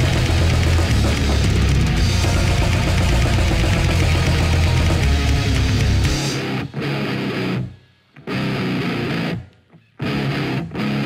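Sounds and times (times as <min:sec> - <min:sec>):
death metal music: 0:00.0 - 0:09.4.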